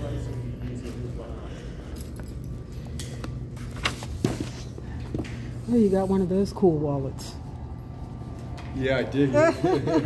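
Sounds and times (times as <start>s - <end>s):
light clicks and jingles: 1.8s - 3.2s.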